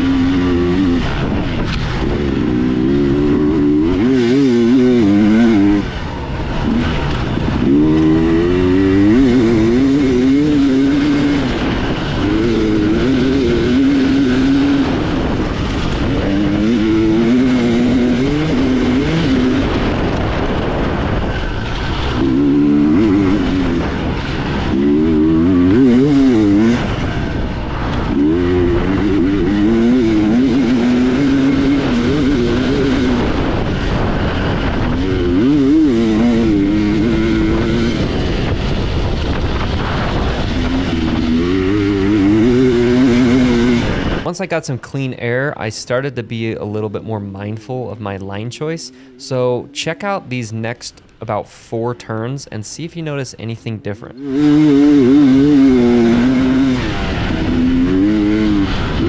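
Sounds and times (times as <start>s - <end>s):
dirt bike engine revving: 0.0s - 44.7s, 45.3s - 59.0s.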